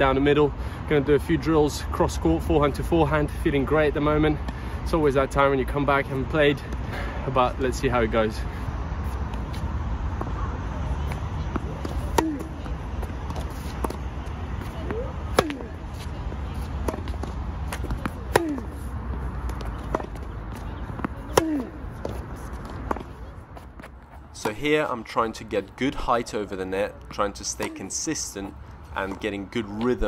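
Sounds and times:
tennis racket hitting ball: 0:11.0 - 0:24.6, 0:27.5 - 0:28.0.

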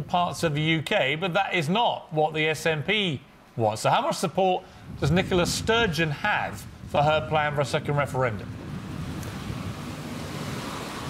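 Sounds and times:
wind on microphone: 0:04.7 - 0:11.0.

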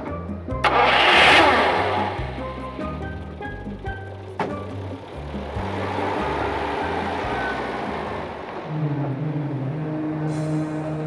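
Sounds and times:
background music low notes: 0:00.0 - 0:11.0
car engine and tyre noise: 0:00.0 - 0:11.0.

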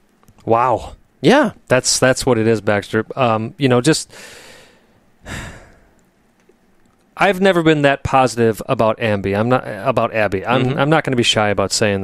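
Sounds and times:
man sighing: 0:05.2 - 0:06.0.

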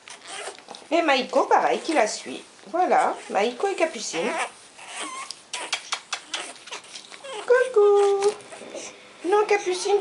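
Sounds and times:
puppy whining: 0:00.0 - 0:00.8, 0:02.8 - 0:10.0
small clicks and scratches: 0:00.0 - 0:00.9, 0:05.0 - 0:07.3
puppies scuffling on a mat: 0:00.0 - 0:10.0.

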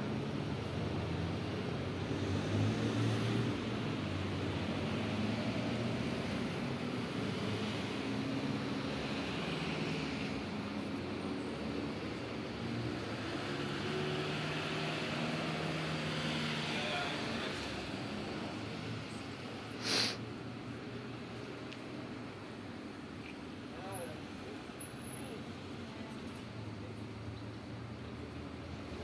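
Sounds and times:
street background noise: 0:00.0 - 0:29.0.

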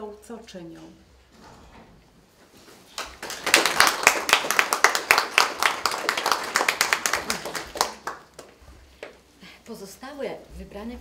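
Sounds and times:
small audience applauding: 0:02.9 - 0:09.2.

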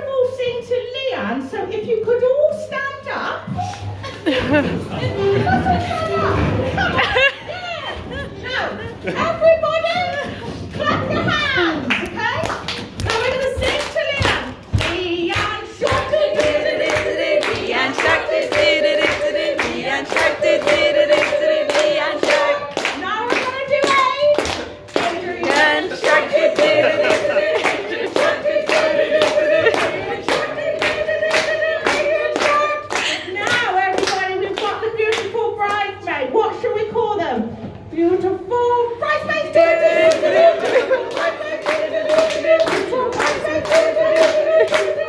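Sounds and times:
rhythmic clapping: 0:09.9 - 0:35.9, 0:39.4 - 0:45.0
woman singing into microphone: 0:13.0 - 0:36.0.

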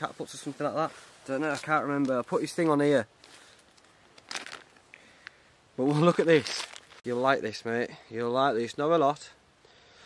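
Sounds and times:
clothing rustling and crinkling: 0:00.0 - 0:07.1.

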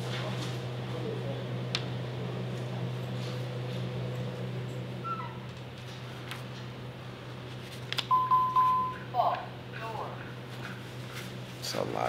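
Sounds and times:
low electrical hum: 0:00.0 - 0:12.0
electronic beep: 0:08.1 - 0:09.1.

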